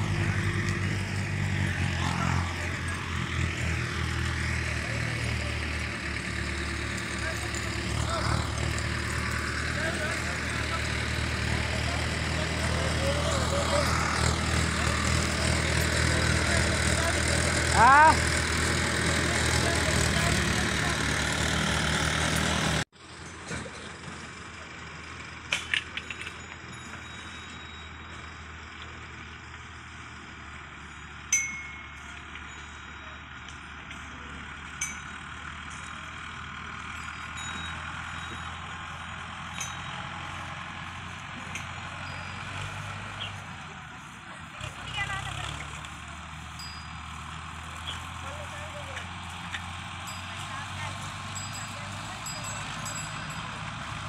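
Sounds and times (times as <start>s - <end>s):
close tractor engine running: 0.0s - 54.0s
distant tractor engines humming: 0.0s - 54.0s
sharp metal clinks: 25.6s - 28.4s, 30.8s - 43.4s, 45.0s - 54.0s.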